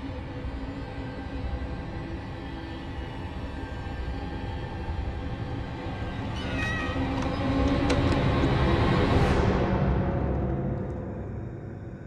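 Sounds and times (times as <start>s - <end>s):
low horror score drone: 0.0s - 12.0s.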